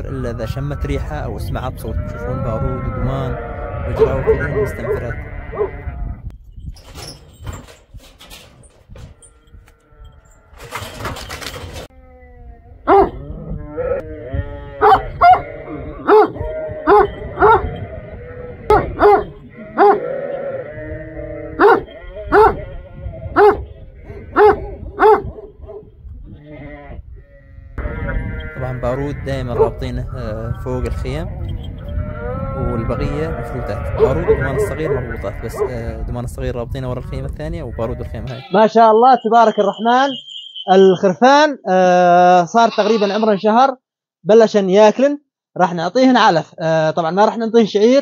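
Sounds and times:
sheep bleating: 1.8s - 6.3s, 12.0s - 24.6s, 26.3s - 36.0s, 37.6s - 38.8s, 42.5s - 43.6s
dogs barking deeply: 3.4s - 6.0s, 12.8s - 14.0s, 14.6s - 20.3s, 21.3s - 26.0s, 29.4s - 30.6s, 33.0s - 36.0s.

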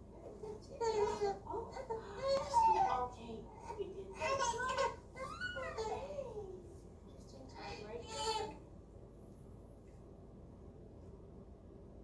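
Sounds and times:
infant crying: 0.2s - 6.5s.

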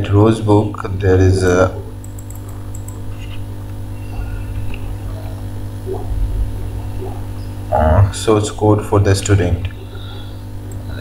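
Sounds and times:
faint small noises: 0.0s - 11.0s
low electrical hum: 0.0s - 11.0s.

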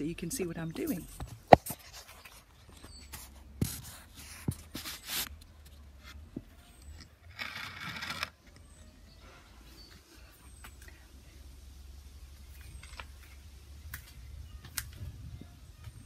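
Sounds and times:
rustling and scraping: 0.7s - 11.0s.

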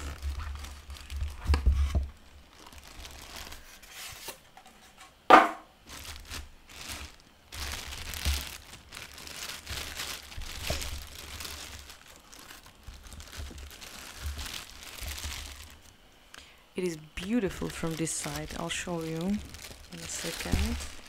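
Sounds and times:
plastic film crinkling: 0.0s - 4.3s, 5.8s - 16.0s, 16.8s - 21.0s.

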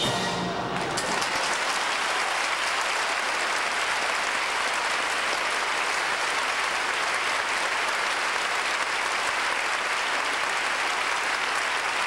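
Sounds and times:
audience applauding: 0.4s - 12.0s.

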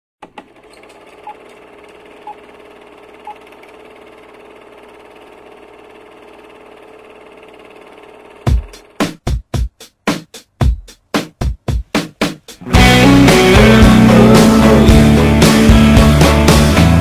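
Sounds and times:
film projector whirring: 0.2s - 9.1s.

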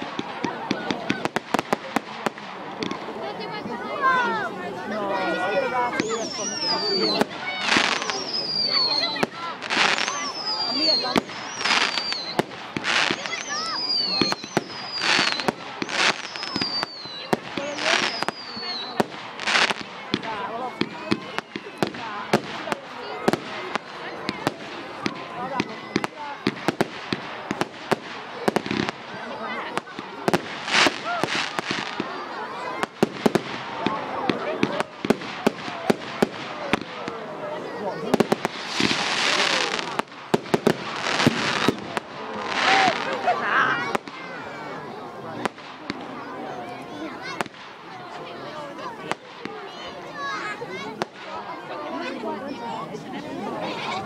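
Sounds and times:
falling whistling tones: 5.9s - 7.2s, 7.8s - 9.3s, 9.9s - 12.4s, 13.0s - 19.0s
hissing crackling bursts: 6.0s - 37.1s, 38.0s - 44.2s
firework shells bursting: 38.1s - 43.2s.

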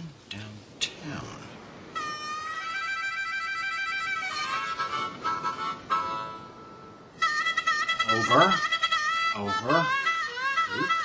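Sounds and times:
harmonica chords: 2.0s - 11.0s.

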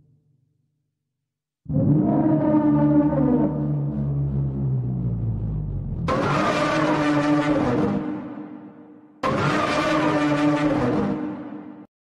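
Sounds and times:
car engine steady note: 3.9s - 6.1s.

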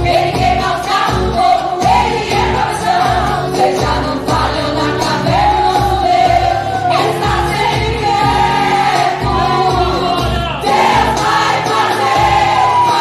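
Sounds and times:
women's choir singing gospel: 0.0s - 13.0s.

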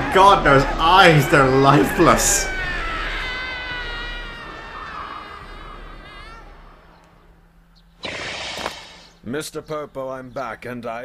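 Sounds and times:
high drawn-out scream: 0.0s - 7.4s
hissing noise burst: 8.0s - 9.2s.

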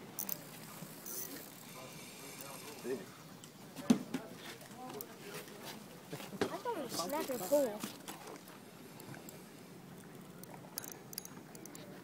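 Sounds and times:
faint steady background noise: 0.0s - 12.0s
fishing reel clicking: 0.2s - 3.0s, 7.0s - 7.8s, 8.9s - 11.9s.

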